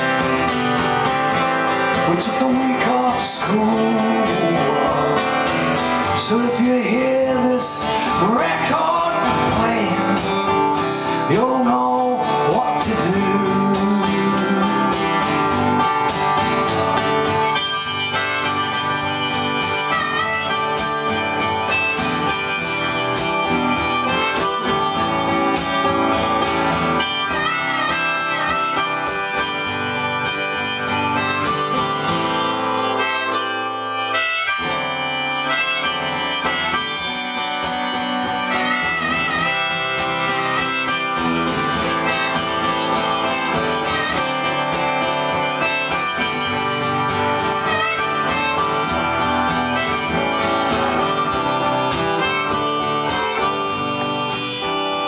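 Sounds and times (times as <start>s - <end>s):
harmonica solo: 0.0s - 55.0s
strummed acoustic guitar: 0.0s - 55.0s.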